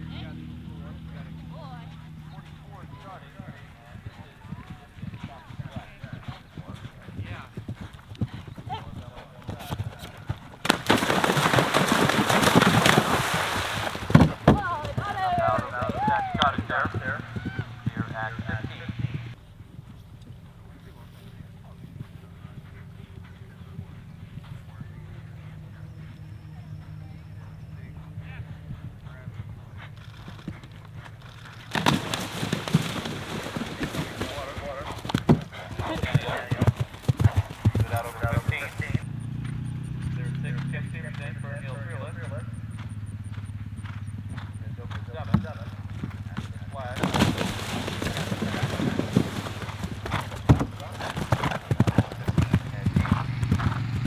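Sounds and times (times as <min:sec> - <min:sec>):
horses galloping on turf: 0:00.0 - 0:54.0.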